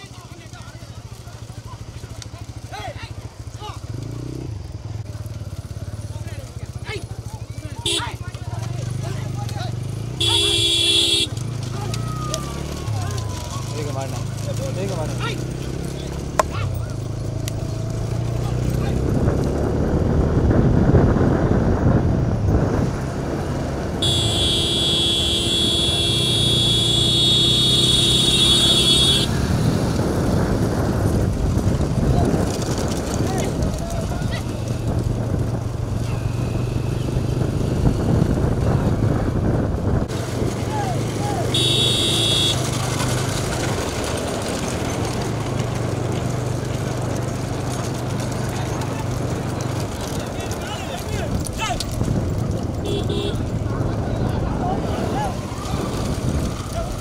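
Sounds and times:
voices shouting: 0:00.0 - 0:04.2, 0:06.0 - 0:19.1, 0:24.0 - 0:29.6, 0:33.2 - 0:35.0, 0:35.9 - 0:37.4, 0:40.6 - 0:45.7, 0:52.8 - 0:57.0
motorcycle engine running: 0:00.0 - 0:57.0.

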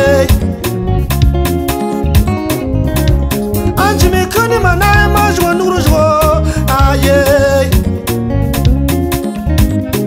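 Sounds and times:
person singing: 0:00.0 - 0:00.8, 0:03.6 - 0:08.1
heavy bass: 0:00.0 - 0:10.0
steady drum beat: 0:00.3 - 0:06.2.

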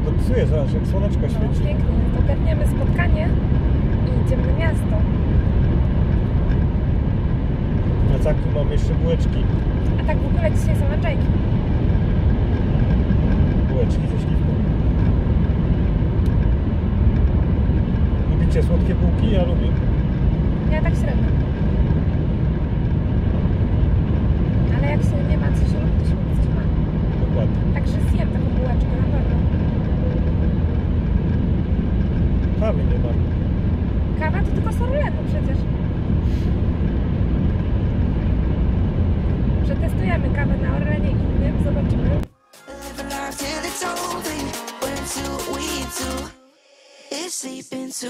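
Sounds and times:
car cabin road rumble: 0:00.0 - 0:42.3
music: 0:42.3 - 0:48.0.

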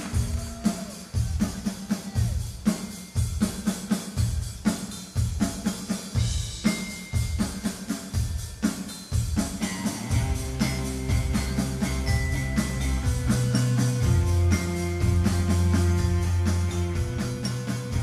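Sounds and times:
drum kick and snare beat: 0:00.0 - 0:18.0
live rock band playing: 0:00.0 - 0:18.0.

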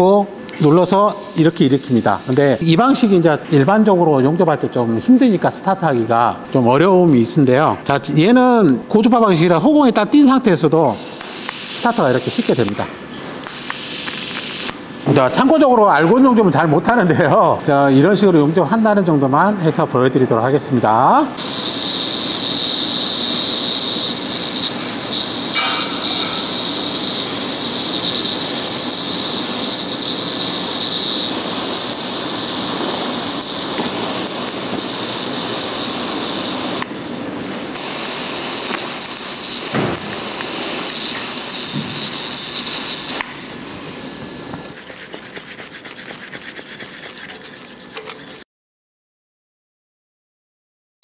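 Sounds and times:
welding arc hissing and buzzing: 0:00.0 - 0:03.0, 0:10.8 - 0:15.7, 0:21.4 - 0:43.8
wire brush scrubbing metal: 0:44.7 - 0:48.4.

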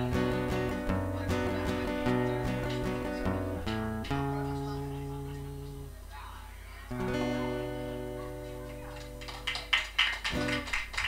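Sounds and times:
acoustic guitar chord ringing: 0:00.0 - 0:06.0, 0:06.9 - 0:09.2
audience clapping: 0:08.7 - 0:11.0.

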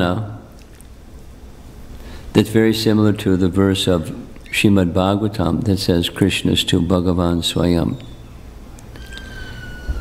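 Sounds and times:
siren sliding down in pitch: 0:09.0 - 0:10.0.

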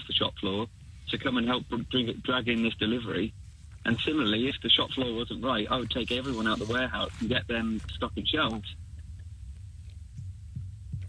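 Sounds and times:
low steady hum: 0:00.0 - 0:11.0
soft low thumps: 0:00.4 - 0:11.0.

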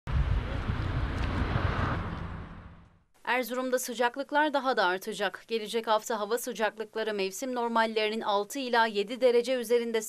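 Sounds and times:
wind buffeting microphone: 0:00.1 - 0:02.8.

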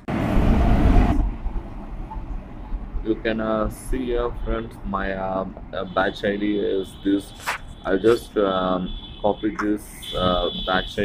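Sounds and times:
rushing noise with low rumble: 0:00.0 - 0:06.0.

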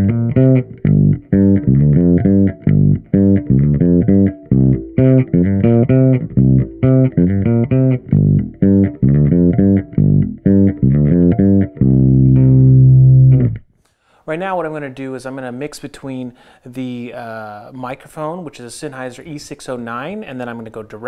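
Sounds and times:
distorted bass guitar notes: 0:00.0 - 0:13.7.

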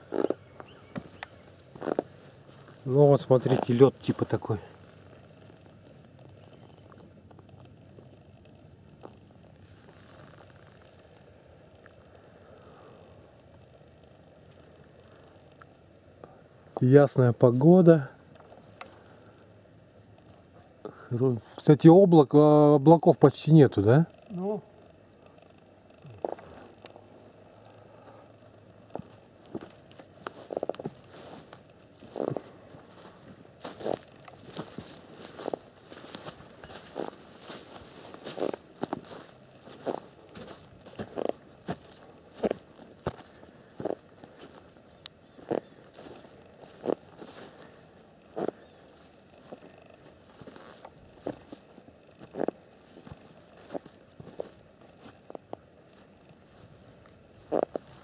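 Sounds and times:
footsteps in dry grass: 0:00.0 - 0:12.2, 0:28.7 - 0:58.0.

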